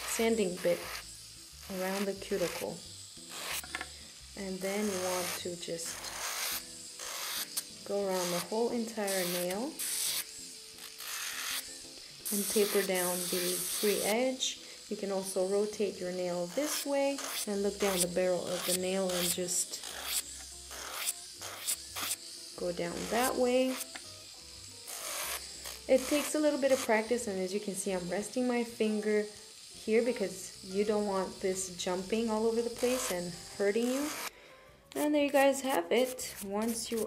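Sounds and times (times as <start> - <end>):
nail drill rasping on nail: 0.0 - 34.3, 34.9 - 37.0.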